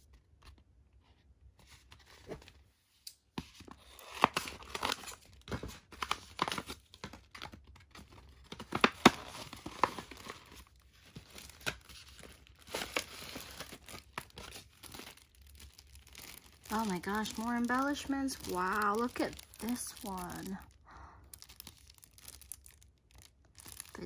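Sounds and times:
plastic and paper packaging crinkling: 0:03.4 - 0:24.0.

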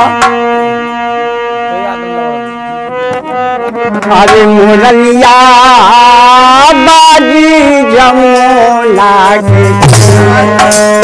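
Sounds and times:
harmonium sustained chord: 0:00.0 - 0:10.7
person singing: 0:04.1 - 0:11.0.

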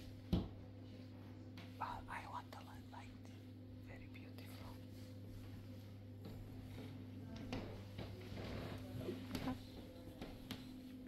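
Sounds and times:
steady low hum: 0:00.0 - 0:11.0
hushed voices whispering: 0:01.8 - 0:04.9.

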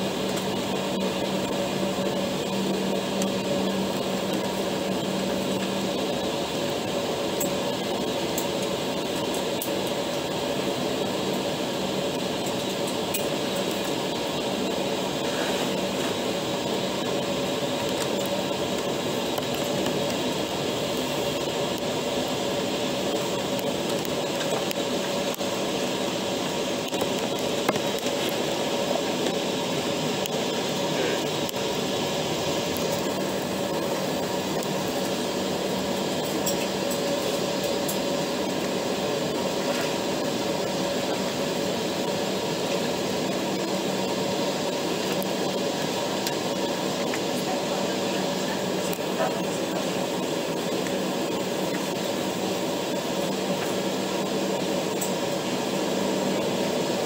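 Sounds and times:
airliner cabin hum while taxiing: 0:00.0 - 0:57.0.

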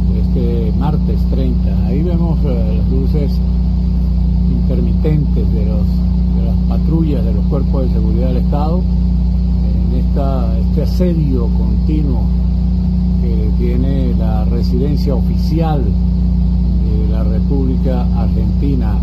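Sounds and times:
man speaking: 0:00.0 - 0:03.5, 0:04.4 - 0:09.0, 0:09.6 - 0:12.4, 0:13.2 - 0:16.0, 0:16.8 - 0:19.0
steady low drone: 0:00.0 - 0:19.0.

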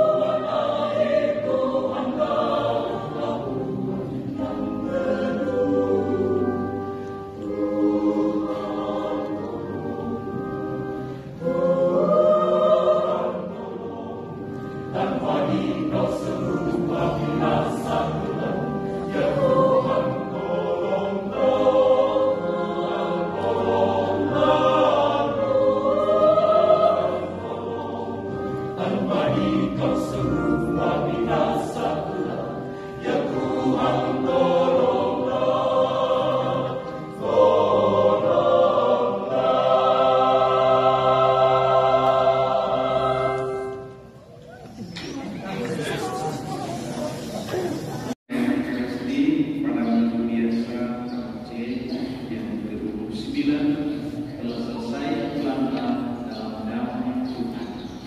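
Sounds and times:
mixed choir singing in harmony: 0:00.0 - 0:58.0.

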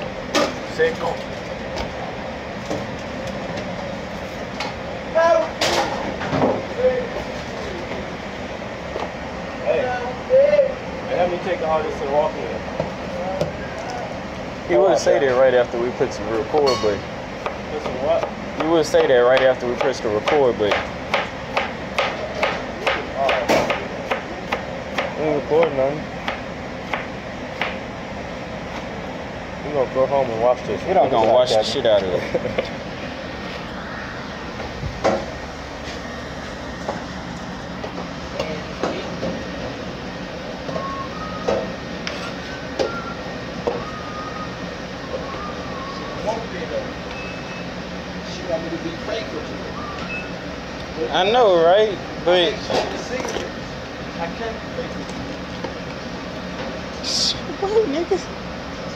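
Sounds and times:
steady mechanical hum: 0:00.0 - 0:58.9.

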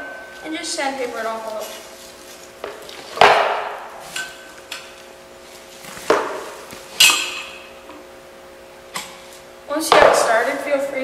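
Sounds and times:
metal tubes clanking: 0:07.0 - 0:07.8.

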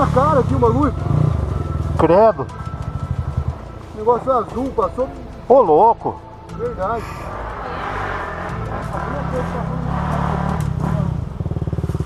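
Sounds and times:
motorcycle pulling away at low revs: 0:00.0 - 0:03.7, 0:07.3 - 0:12.0
off-road motorcycle engines revving: 0:00.0 - 0:12.0.

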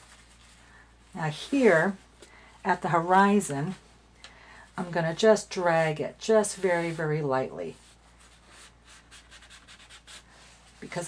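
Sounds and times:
paper towel rubbing on paper: 0:06.5 - 0:11.0.

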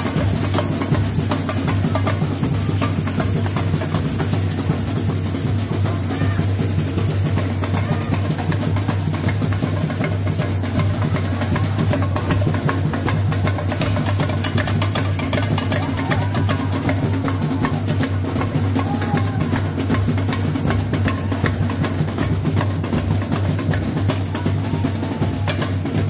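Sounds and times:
fast snare drum strikes: 0:00.0 - 0:26.0
stick-played tamborins: 0:00.0 - 0:26.0.

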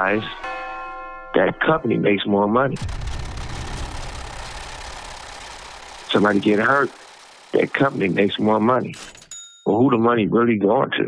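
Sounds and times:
banknote counting machine whirring: 0:02.8 - 0:09.5.

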